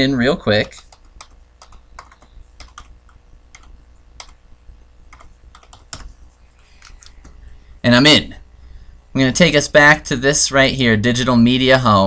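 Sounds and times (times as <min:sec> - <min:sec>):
faint low hum: 0:00.0 - 0:12.0
keyboard keys tapping: 0:00.5 - 0:04.4, 0:05.1 - 0:06.2.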